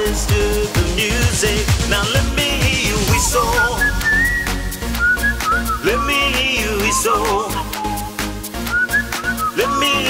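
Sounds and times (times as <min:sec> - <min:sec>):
kick drum and hi-hat beat: 0:00.0 - 0:10.0
whistled melody: 0:03.1 - 0:10.0.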